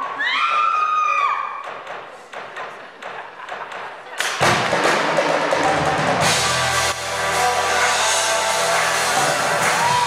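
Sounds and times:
crowd noise: 0:00.0 - 0:10.0
loud music with heavy drum beat: 0:04.2 - 0:10.0
audience screaming: 0:07.3 - 0:10.0.

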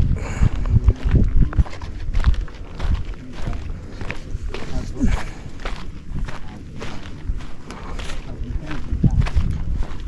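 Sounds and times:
footsteps on sand: 0:00.0 - 0:10.0.

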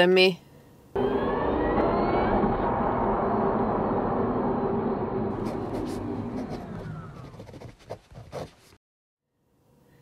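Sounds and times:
whirring rush with rising whine: 0:01.0 - 0:07.4.

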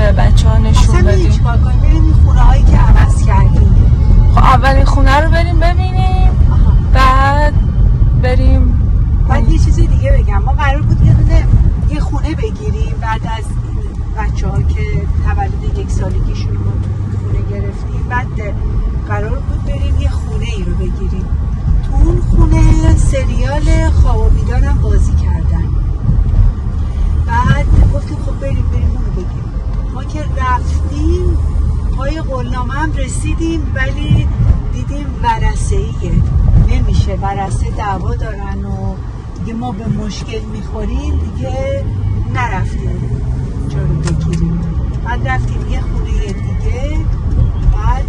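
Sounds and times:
people talking: 0:00.0 - 0:03.8, 0:04.4 - 0:07.6, 0:08.2 - 0:16.6, 0:17.3 - 0:21.3, 0:21.9 - 0:25.7, 0:27.3 - 0:29.4, 0:30.0 - 0:31.4, 0:32.0 - 0:43.0, 0:45.1 - 0:47.1, 0:47.8 - 0:48.0
road and engine rumble in car: 0:00.0 - 0:48.0.

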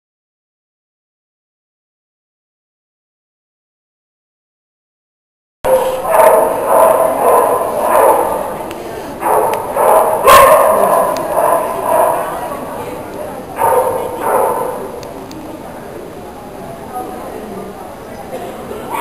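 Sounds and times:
dogs barking: 0:05.7 - 0:15.0
voices: 0:05.7 - 0:19.0.

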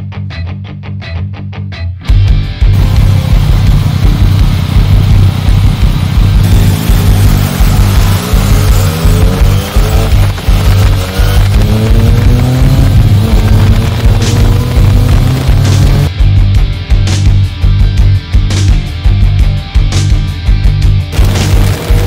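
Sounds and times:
rock music: 0:00.0 - 0:22.0
motorcycle engine accelerating: 0:02.7 - 0:16.2, 0:21.0 - 0:22.0.

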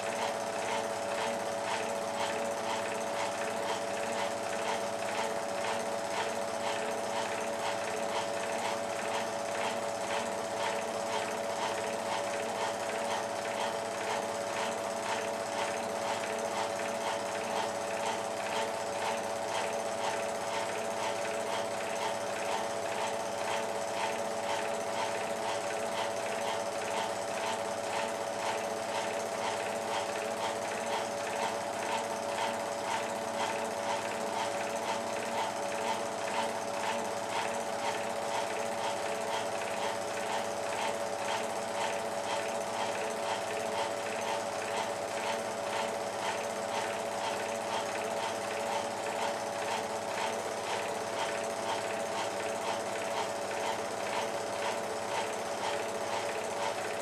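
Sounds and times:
film projector clattering: 0:00.0 - 0:57.0
projector hum: 0:00.0 - 0:57.0.

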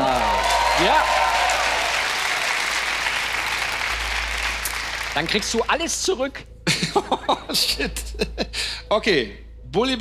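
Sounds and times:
audience applauding: 0:00.0 - 0:06.0.

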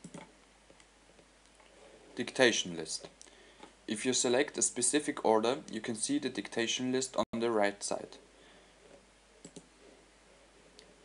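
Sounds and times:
computer mouse clicking: 0:00.0 - 0:00.9, 0:09.4 - 0:09.7.

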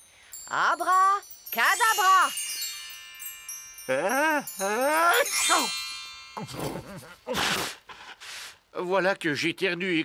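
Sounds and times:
magic chimes shimmering: 0:00.0 - 0:07.3.

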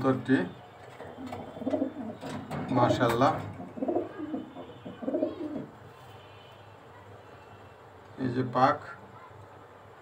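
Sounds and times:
pigeons cooing: 0:01.1 - 0:05.7.

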